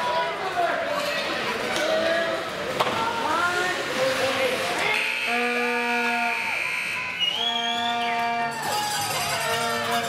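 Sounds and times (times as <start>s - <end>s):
faint crowd voices: 0.0s - 10.0s
horn blasts: 4.9s - 10.0s.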